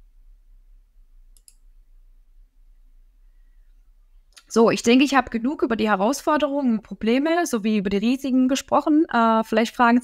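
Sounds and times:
low electrical hum: 0:00.0 - 0:10.0
faint short clicks: 0:01.3 - 0:01.6.

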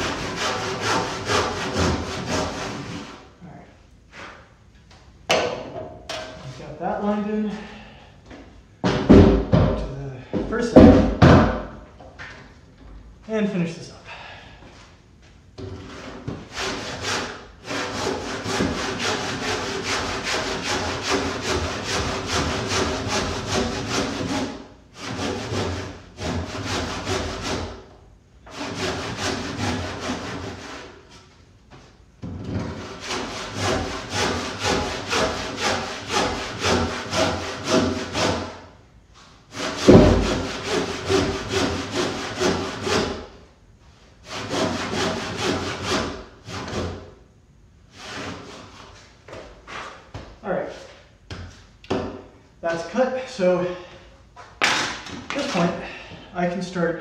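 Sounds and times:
hand saw cutting timber: 0:00.0 - 0:03.2, 0:15.9 - 0:27.8, 0:28.5 - 0:31.0, 0:32.7 - 0:38.7, 0:39.5 - 0:43.3, 0:44.2 - 0:47.0, 0:48.0 - 0:48.7.

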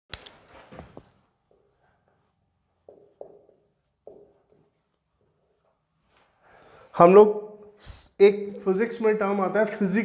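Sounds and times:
marker writing on whiteboard: 0:01.4 - 0:06.0.

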